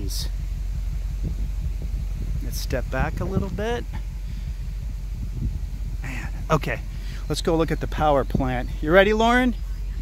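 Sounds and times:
car engine idling: 0:00.0 - 0:10.0
wind noise on microphone: 0:00.0 - 0:10.0.

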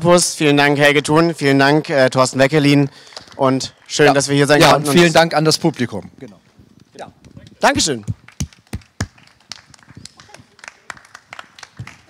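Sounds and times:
small audience applauding: 0:02.9 - 0:04.6, 0:08.2 - 0:12.0.

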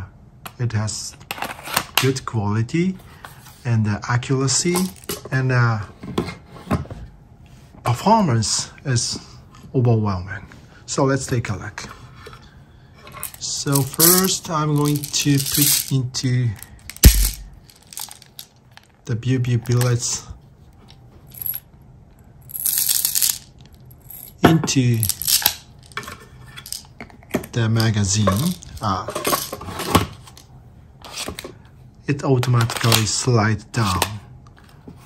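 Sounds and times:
plastic pellets pouring rattle: 0:16.9 - 0:18.4.

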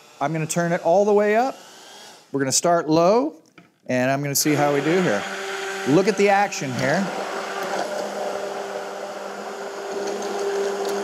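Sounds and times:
immersion blender motor hum: 0:00.0 - 0:02.3, 0:04.4 - 0:11.0.

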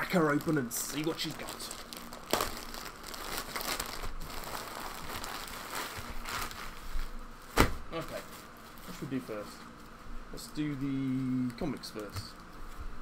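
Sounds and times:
plastic bag tearing: 0:00.0 - 0:09.3
plastic bag crinkling: 0:00.0 - 0:09.6.

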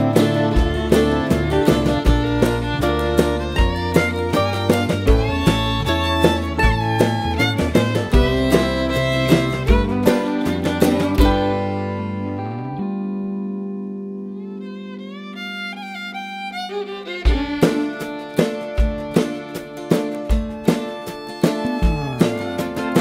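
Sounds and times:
drums: 0:00.0 - 0:12.4, 0:17.1 - 0:23.0
fiddle: 0:00.0 - 0:13.0, 0:14.1 - 0:23.0
bass: 0:00.0 - 0:23.0
guitar: 0:00.0 - 0:23.0.

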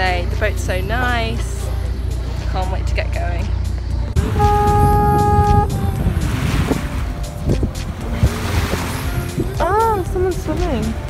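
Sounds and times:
background music: 0:00.0 - 0:11.0
boat engine rumble: 0:00.0 - 0:11.0
wind and water rushing: 0:04.0 - 0:11.0.

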